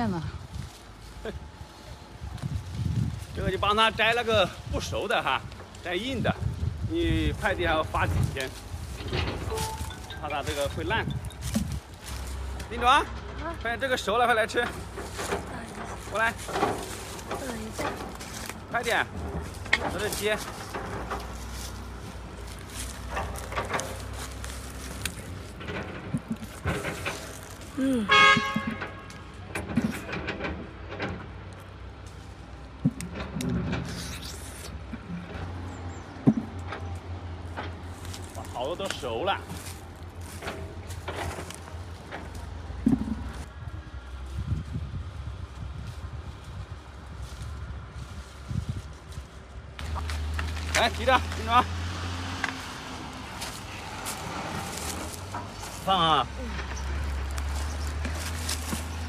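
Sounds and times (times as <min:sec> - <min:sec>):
leaves and branches rustling: 0:00.0 - 0:59.0.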